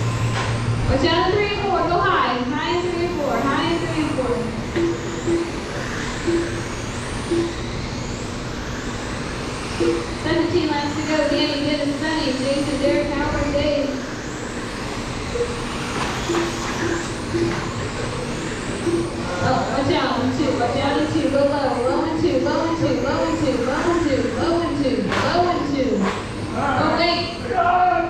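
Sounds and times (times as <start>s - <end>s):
small rc car motors whining: 0.0s - 28.0s.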